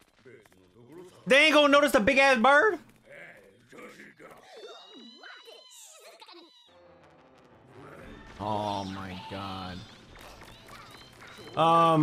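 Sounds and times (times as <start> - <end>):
cartoon character voices: 3.1 - 6.8.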